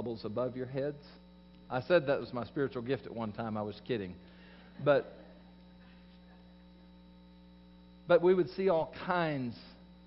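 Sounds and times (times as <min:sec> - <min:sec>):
faint electrical mains hum: 0:00.0 - 0:10.0.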